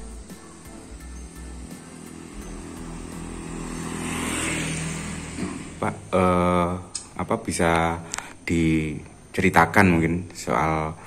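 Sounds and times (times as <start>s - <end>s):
steady low hum: 0.0s - 11.0s
vehicle passing: 0.6s - 6.9s.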